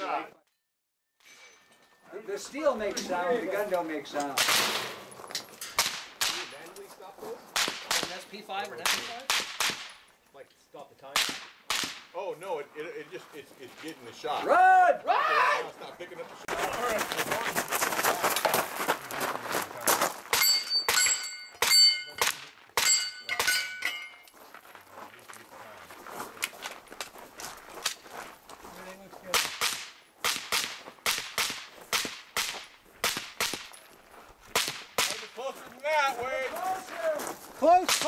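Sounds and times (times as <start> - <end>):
gunshot cracks: 4.4 - 5.0, 5.8 - 6.5, 8.8 - 9.9, 11.2 - 12.1
steel targets ringing: 20.4 - 24.3.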